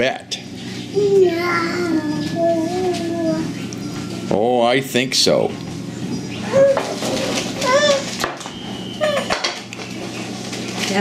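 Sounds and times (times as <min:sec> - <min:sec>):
child's high-pitched vocal sounds: 0:01.0 - 0:03.5, 0:07.6 - 0:08.1.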